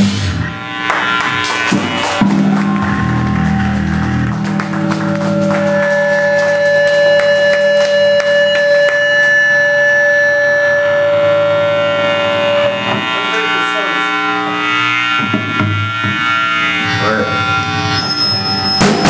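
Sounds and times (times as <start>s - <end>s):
rock band playing loudly: 0.0s - 19.0s.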